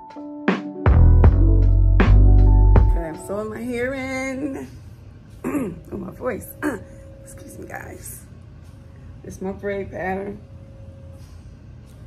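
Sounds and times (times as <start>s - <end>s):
faint background music: 0.8s - 12.0s.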